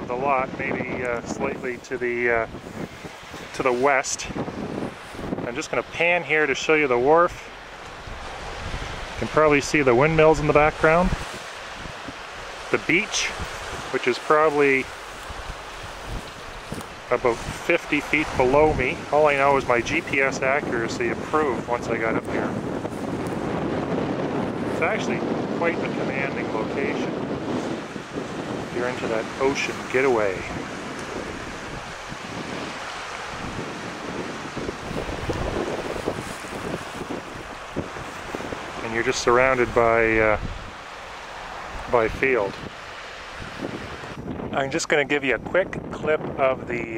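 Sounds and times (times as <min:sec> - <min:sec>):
wind on microphone: 0:00.0 - 0:46.9.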